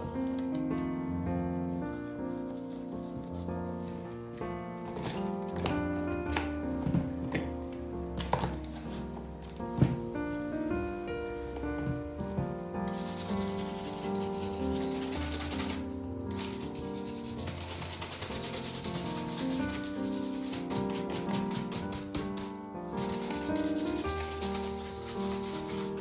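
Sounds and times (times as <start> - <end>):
background music: 0.0 - 26.0
shoe brush scrubbing leather: 13.0 - 15.8, 16.4 - 26.0.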